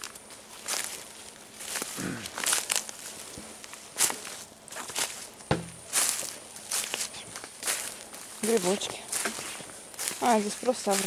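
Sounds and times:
footsteps on dry leaves and twigs: 0:00.0 - 0:11.0.

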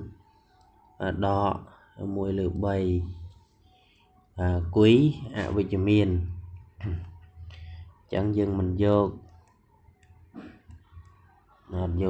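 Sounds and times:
person speaking: 0:04.4 - 0:07.2.

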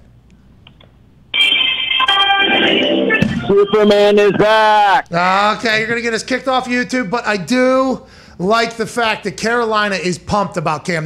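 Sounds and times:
music over telephone line: 0:01.4 - 0:04.9.

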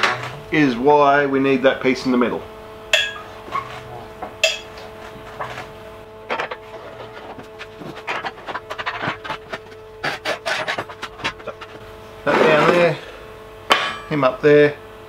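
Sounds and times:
sharp metal clank: 0:03.0 - 0:03.4, 0:04.4 - 0:04.8, 0:13.7 - 0:14.2.

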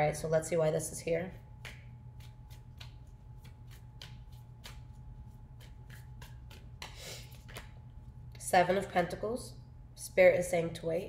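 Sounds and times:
cards being shuffled by hand: 0:01.6 - 0:08.0.

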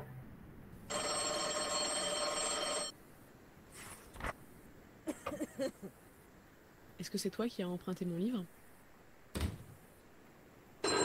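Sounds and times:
telephone ringing: 0:00.9 - 0:02.9.

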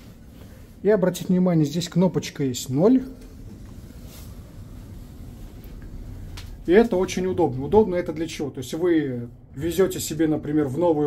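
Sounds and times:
soft rustle: 0:00.0 - 0:09.6
lift running hum: 0:02.7 - 0:11.0.

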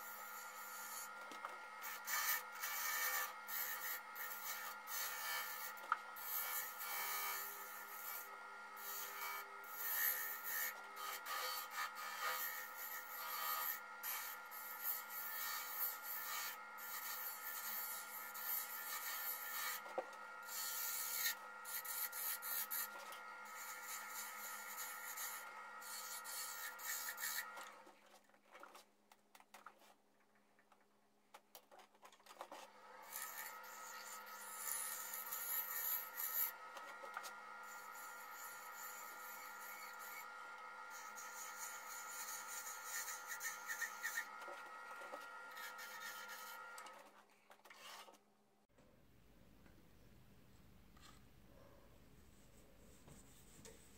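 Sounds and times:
wood lathe motor whine: 0:00.0 - 0:27.8, 0:32.7 - 0:47.1
turning tool scraping wood: 0:00.0 - 0:28.9, 0:31.7 - 0:48.2.

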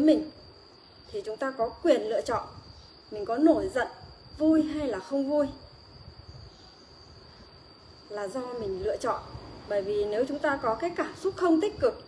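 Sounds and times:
high-pitched whine: 0:00.0 - 0:12.0
low background hiss: 0:00.0 - 0:12.0.

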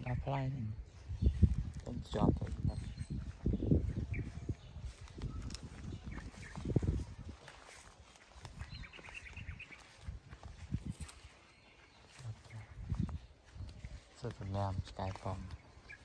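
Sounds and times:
footsteps through grass: 0:00.0 - 0:16.0.

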